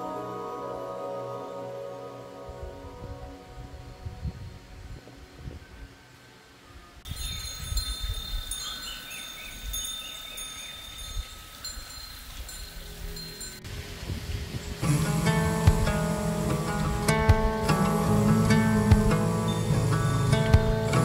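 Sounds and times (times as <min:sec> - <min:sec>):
chime-like high ringing tones: 0:07.1 - 0:13.9, 0:17.8 - 0:21.0
acoustic guitar music: 0:13.6 - 0:21.0.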